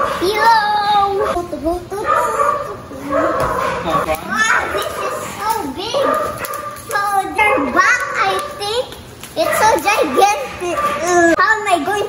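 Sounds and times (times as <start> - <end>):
dog barking and whining: 0.0 - 8.6, 9.4 - 11.4
children's voices: 0.0 - 12.0.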